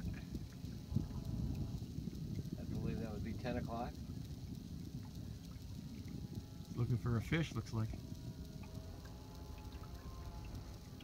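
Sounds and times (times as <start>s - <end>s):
faint thin hum: 0.0s - 11.0s
wind and water rumble: 0.0s - 11.0s.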